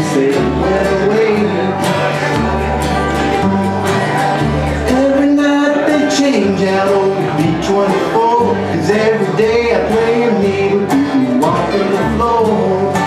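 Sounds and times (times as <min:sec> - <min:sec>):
banjo: 0:00.0 - 0:13.0
mandolin: 0:00.0 - 0:13.0
strummed acoustic guitar: 0:00.0 - 0:13.0
upright bass notes: 0:00.0 - 0:13.0.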